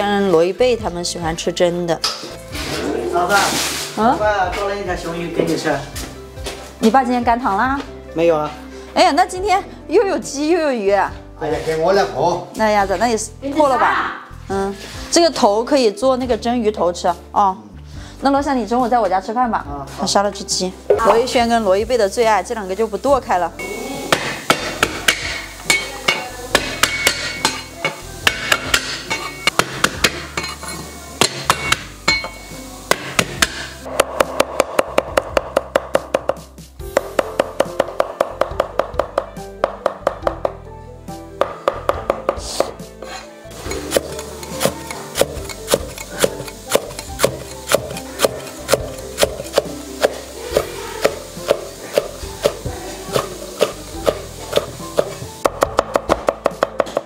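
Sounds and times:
background music: 0.0s - 57.0s
knife chopping on wooden block: 28.3s - 30.3s, 32.9s - 36.4s, 43.7s - 57.0s.

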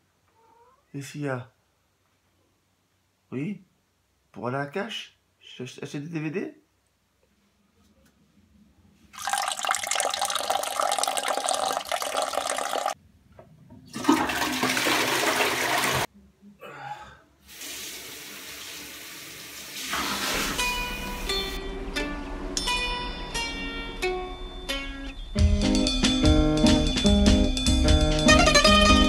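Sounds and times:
toilet flushing: 9.2s - 13.0s, 13.8s - 16.1s, 17.5s - 21.6s
low hum: 21.3s - 25.4s.

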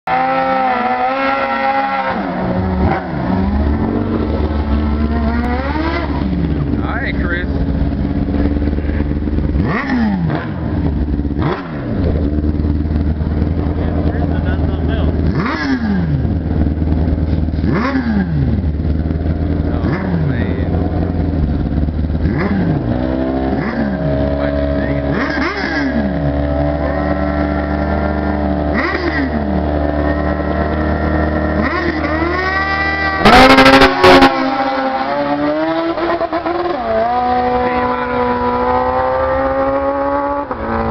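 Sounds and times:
motorcycle engines revving: 0.0s - 40.9s.

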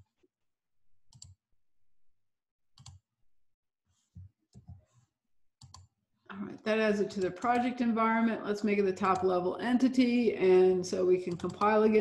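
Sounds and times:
computer mouse clicks: 1.1s - 1.4s, 5.6s - 5.9s, 7.1s - 7.7s, 9.0s - 9.3s, 11.3s - 12.0s.

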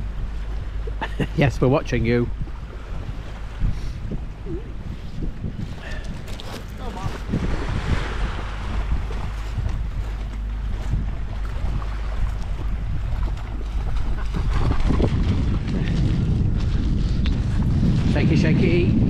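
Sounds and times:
wind buffeting microphone: 0.0s - 19.0s
small waves lapping on shingle: 5.6s - 17.2s.

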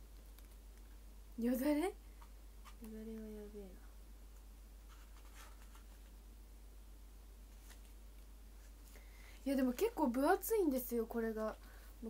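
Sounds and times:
book pages rustling: 4.9s - 6.2s, 7.5s - 8.0s.

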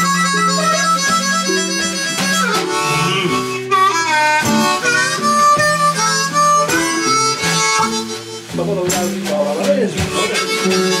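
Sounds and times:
amplified blues harmonica: 0.0s - 11.0s
guitar: 0.0s - 11.0s.

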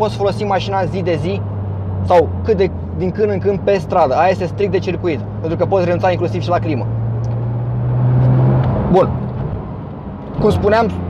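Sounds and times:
car engine drone from cabin: 0.0s - 11.0s.

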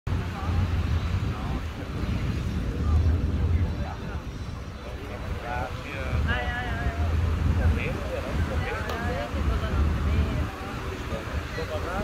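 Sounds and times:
distant voices: 0.1s - 12.0s
wind buffeting microphone: 0.1s - 12.0s.

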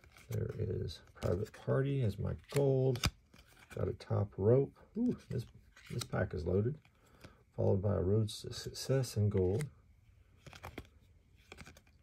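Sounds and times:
trading cards sliding and flicking: 2.4s - 3.8s, 5.3s - 6.2s, 10.4s - 12.0s.

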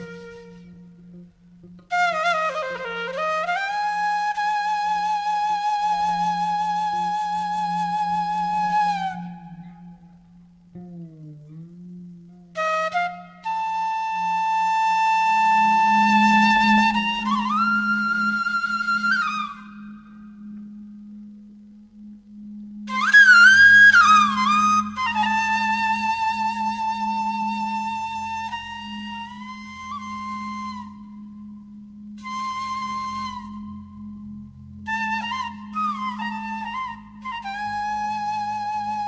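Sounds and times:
bamboo flute long note: 0.0s - 11.0s, 12.3s - 39.0s
low sustained drone note: 0.0s - 39.0s.

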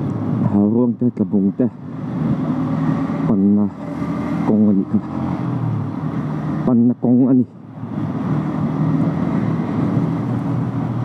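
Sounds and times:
road and wind noise: 0.0s - 11.0s.

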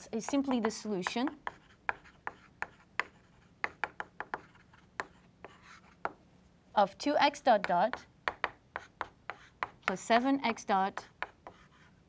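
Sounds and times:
chalk tapping and scratching on blackboard: 0.0s - 6.2s, 7.6s - 12.0s.

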